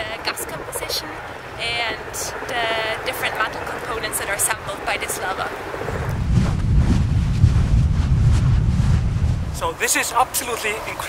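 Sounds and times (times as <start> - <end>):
lava fountains rumbling: 0.0 - 11.0
wind buffeting microphone: 0.0 - 11.0.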